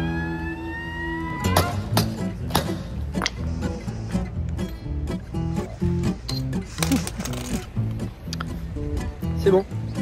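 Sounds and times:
guitar music: 0:00.0 - 0:10.0.

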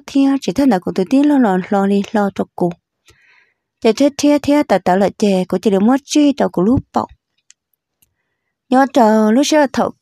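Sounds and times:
person speaking: 0:00.0 - 0:02.8, 0:03.8 - 0:07.6, 0:08.7 - 0:10.0.

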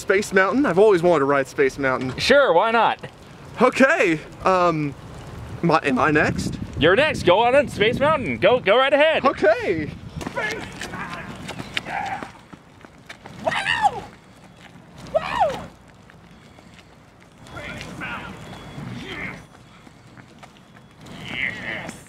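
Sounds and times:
man whooping and yelling: 0:13.4 - 0:14.1, 0:15.1 - 0:15.7.

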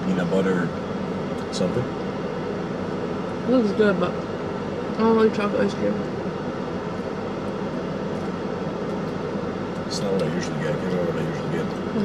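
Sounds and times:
car cabin hiss and hum: 0:00.0 - 0:12.0.

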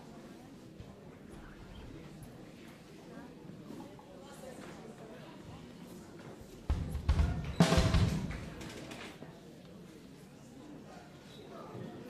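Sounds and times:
drum kit hits: 0:06.7 - 0:08.8.

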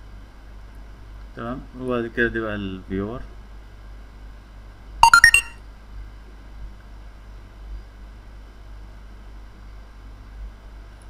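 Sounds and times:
electronic notification chime: 0:05.0 - 0:05.6.

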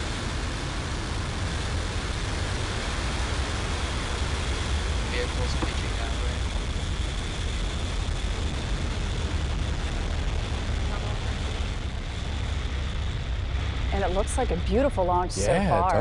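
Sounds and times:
crackling hiss: 0:00.0 - 0:16.0
rocket engines rumbling: 0:00.0 - 0:16.0.

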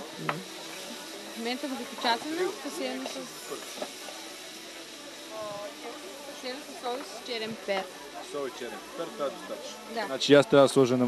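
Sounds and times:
faint voices: 0:00.0 - 0:11.0
meat sizzling in frying pans: 0:00.0 - 0:11.0.

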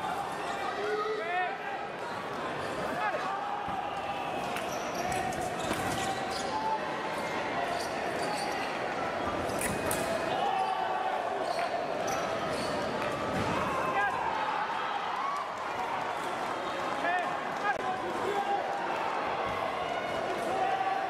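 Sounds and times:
voices in a large hall: 0:00.0 - 0:21.0.

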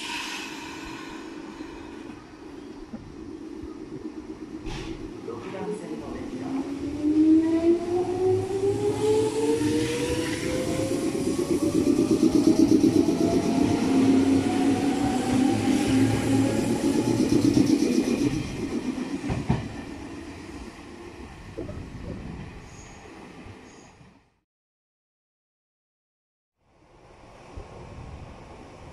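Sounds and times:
wheels rumbling on rails: 0:00.0 - 0:23.9
electric train motors whining: 0:06.3 - 0:19.8.

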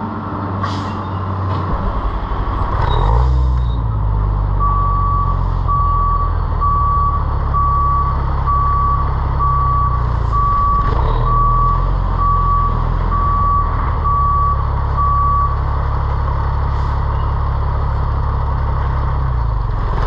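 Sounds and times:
diesel engine running: 0:00.0 - 0:20.0
truck reversing alarm beeping: 0:02.8 - 0:15.9.

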